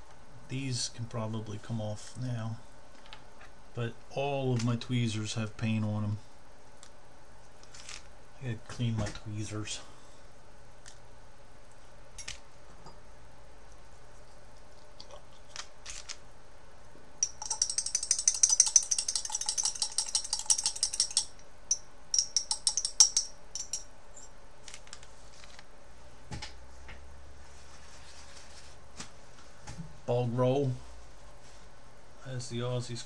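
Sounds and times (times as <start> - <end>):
metal tweezers clinking against glass jar: 17.2 - 23.9.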